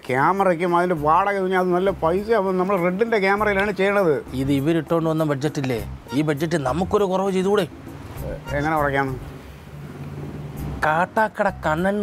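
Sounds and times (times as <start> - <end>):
man speaking: 0.0 - 9.2.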